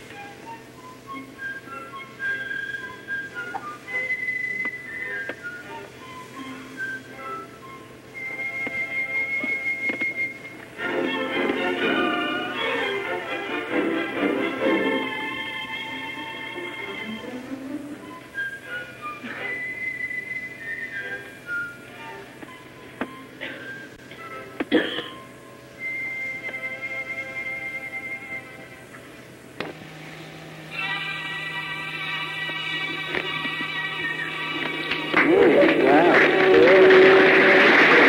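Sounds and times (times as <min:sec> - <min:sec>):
background hiss: 0:00.0 - 0:35.1
orchestral opera music: 0:00.1 - 0:24.8, 0:30.7 - 0:38.0.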